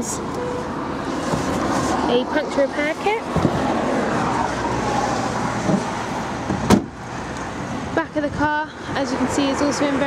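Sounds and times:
car tailgate shutting: 5.6 - 7.0.

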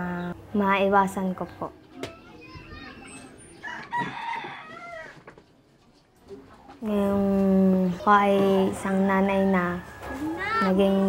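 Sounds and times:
rooster crowing: 3.5 - 5.4.

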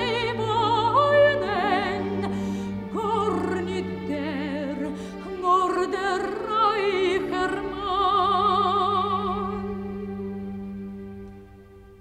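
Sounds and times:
soprano singing with vibrato: 0.0 - 10.2.

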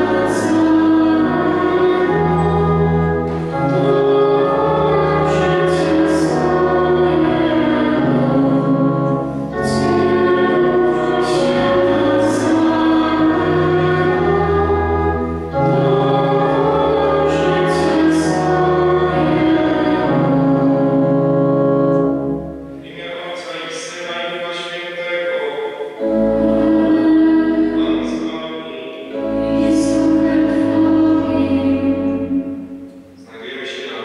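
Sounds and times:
church pipe organ: 0.0 - 34.0
people singing a hymn: 0.0 - 34.0.

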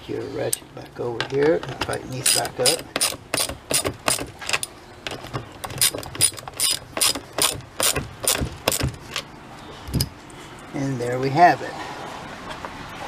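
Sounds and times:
socket ratchet clicking: 2.2 - 8.9.

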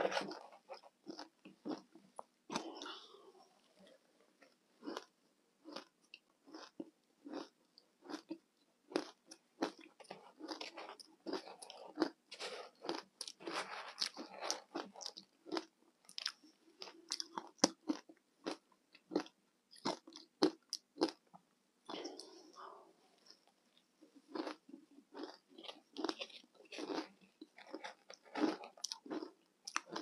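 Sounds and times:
ice crunching while chewed: 0.0 - 3.2, 4.8 - 21.2, 24.3 - 30.0.

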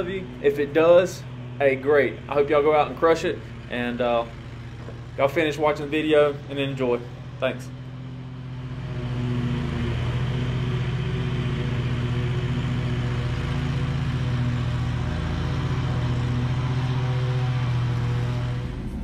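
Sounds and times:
lawn mower engine running: 0.0 - 19.0.

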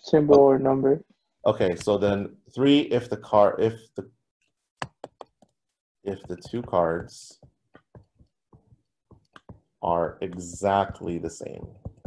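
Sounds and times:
stylus tapping on tablet screen: 4.8 - 12.0.

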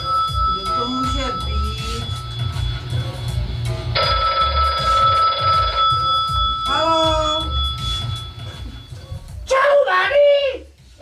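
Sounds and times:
telephone bell ringing: 0.0 - 9.0
background music: 0.0 - 11.0.

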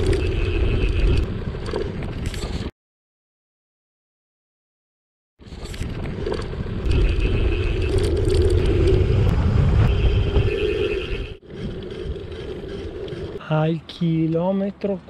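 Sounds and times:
bike rolling on asphalt: 5.4 - 13.6
bike frame vibration: 10.2 - 13.4.

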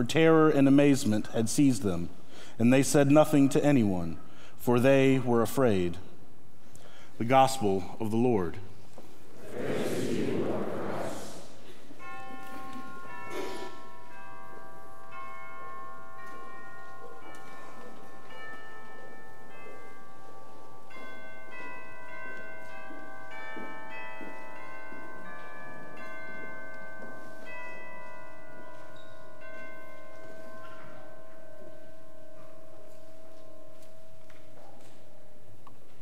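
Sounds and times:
bells ringing: 9.4 - 35.6.

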